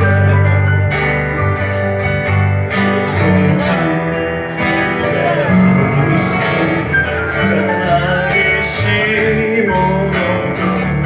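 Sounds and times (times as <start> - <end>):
electric bass line: 0.0 - 11.0
keyboard: 0.0 - 11.0
strummed acoustic guitar: 0.0 - 11.0.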